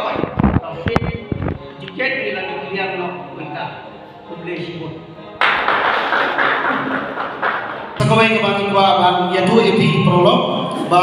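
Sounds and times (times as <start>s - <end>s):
people applauding: 5.4s - 8.0s.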